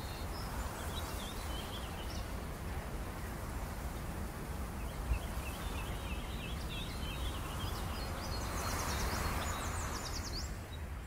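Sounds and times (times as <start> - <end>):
small birds chirping: 0.0 - 2.4, 4.8 - 11.0.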